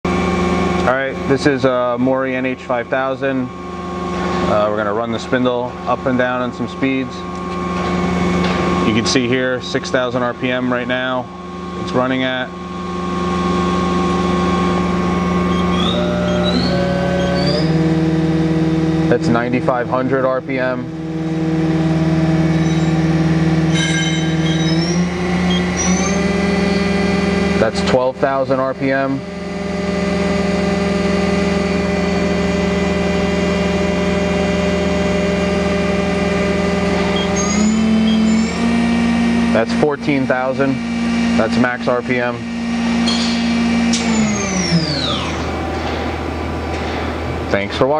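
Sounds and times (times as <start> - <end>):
machine spindle humming: 0.1 - 47.9
high whistling tones: 15.4 - 17.8, 22.5 - 23.1, 23.7 - 27.0, 37.1 - 38.6, 43.0 - 45.5.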